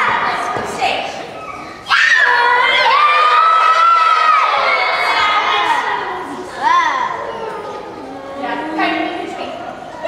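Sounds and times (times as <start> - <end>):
children's drawn-out vocal sounds: 1.1 - 10.0.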